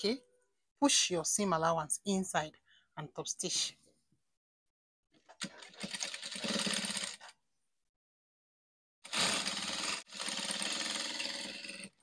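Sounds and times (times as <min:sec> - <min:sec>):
sewing machine stitching: 0:05.4 - 0:07.4, 0:09.0 - 0:12.0.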